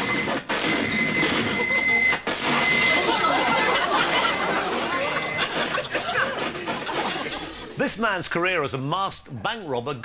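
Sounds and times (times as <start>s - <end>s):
high-pitched electronic tone: 0.0s - 3.3s.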